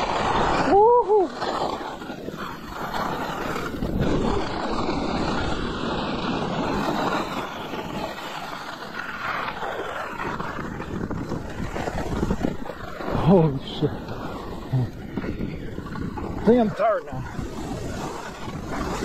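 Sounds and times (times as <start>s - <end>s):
skis sliding over snow: 0.0s - 19.0s
wind rushing over microphone: 0.0s - 19.0s.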